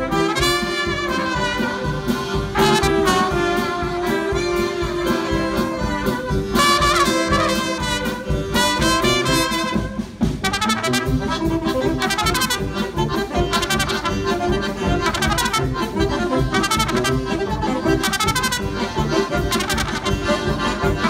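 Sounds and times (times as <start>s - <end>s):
accordion: 0.0s - 21.0s
drum kit: 0.0s - 21.0s
saxophones: 0.0s - 21.0s
trombone: 0.0s - 21.0s
trumpets: 0.0s - 21.0s.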